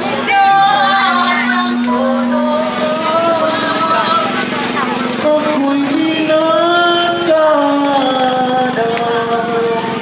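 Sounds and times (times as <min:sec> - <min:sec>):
person singing long notes: 0:00.0 - 0:04.4, 0:05.2 - 0:10.0
crowd voices: 0:00.0 - 0:10.0
motorcycle engine running: 0:00.0 - 0:10.0.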